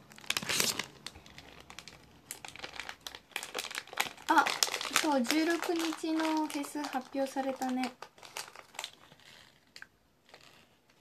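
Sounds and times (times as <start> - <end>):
plastic packet crinkling: 0.0 - 11.0.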